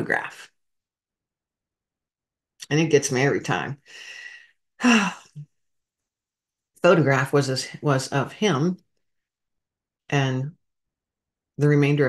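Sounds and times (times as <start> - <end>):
woman breathing in: 3.8 - 5.4
woman sighing: 4.0 - 5.4.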